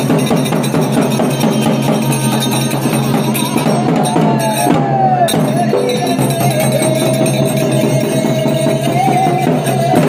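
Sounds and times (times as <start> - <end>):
barrel drum beaten in rhythm: 0.0 - 10.0.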